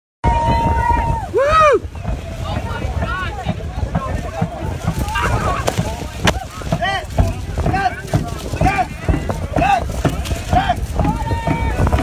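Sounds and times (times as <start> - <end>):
drum beats: 0.2 - 12.0
wind buffeting microphone: 0.2 - 12.0.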